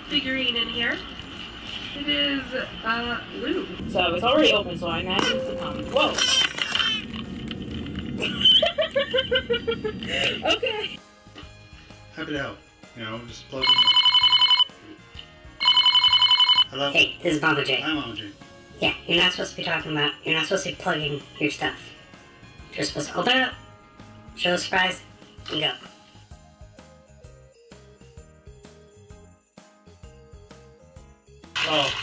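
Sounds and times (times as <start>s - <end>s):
woman's voice: 0.0s - 1.0s, 2.0s - 6.2s, 10.1s - 11.0s, 18.8s - 22.0s, 22.7s - 23.6s
telephone ringing: 13.6s - 14.8s, 15.6s - 16.8s.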